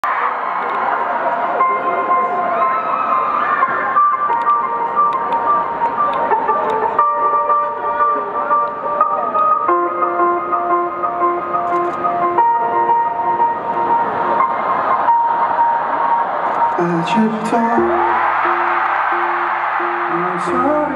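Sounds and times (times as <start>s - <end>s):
crowd voices calling out: 0.0s - 9.7s, 13.4s - 20.9s
keyboard notes over chords: 1.6s - 20.9s.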